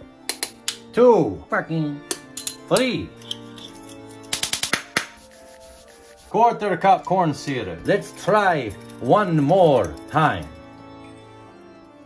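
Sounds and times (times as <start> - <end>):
background music: 0.0 - 12.0
metal utensil clinking ceramic bowl: 2.1 - 4.6, 7.5 - 10.6.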